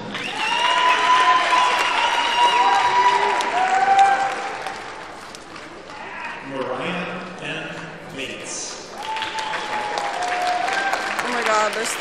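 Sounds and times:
long cheering call: 0.1s - 4.8s, 9.0s - 11.3s
audience clapping: 0.2s - 6.1s, 8.7s - 12.0s.

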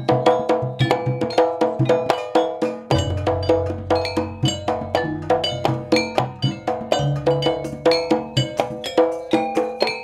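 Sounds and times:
gamelan gongs ringing: 0.0s - 10.0s.

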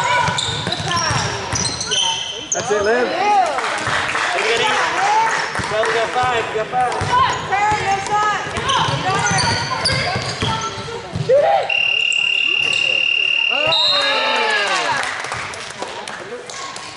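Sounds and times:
shoes squeaking on hardwood floor: 0.0s - 3.1s, 8.5s - 11.3s
basketball bouncing: 7.0s - 11.3s.

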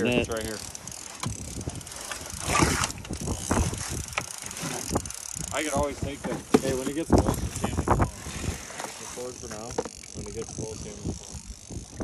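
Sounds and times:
fishing reel cranking: 0.0s - 12.0s.

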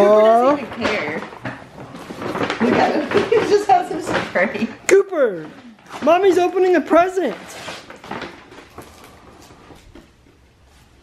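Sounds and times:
paper rustling and crinkling: 0.4s - 4.4s, 5.3s - 11.0s.

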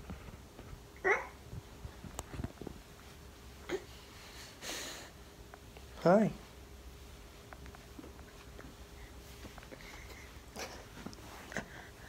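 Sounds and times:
knocks and rustles of movement: 0.0s - 4.2s, 5.5s - 11.9s.

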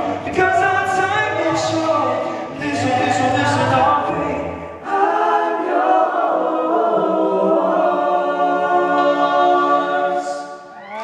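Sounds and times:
male a cappella group singing: 0.0s - 10.7s.

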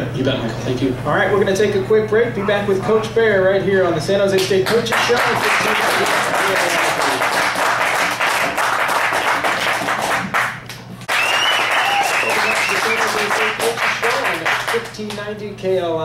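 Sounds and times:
crowd cheering and applauding: 4.9s - 14.8s.

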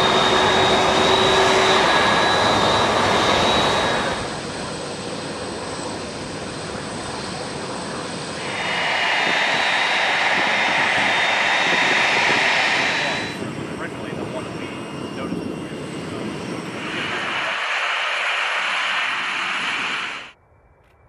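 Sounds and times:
jet engine rush: 0.0s - 20.4s
jet engine whine: 0.0s - 21.0s.

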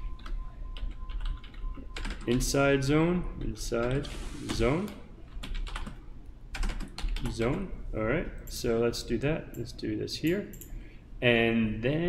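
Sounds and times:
keyboard typing clicks: 0.2s - 2.4s.

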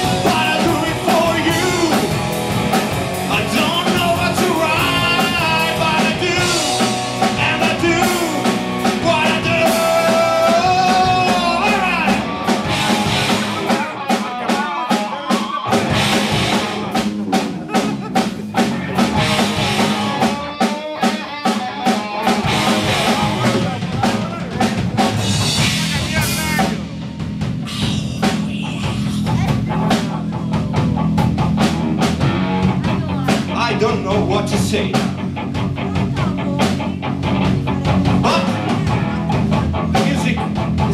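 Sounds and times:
drum hits: 0.0s - 14.3s, 15.7s - 20.8s, 21.8s - 35.3s
bending melodic guitar line: 0.0s - 40.9s
live rock band playing: 0.0s - 40.9s.

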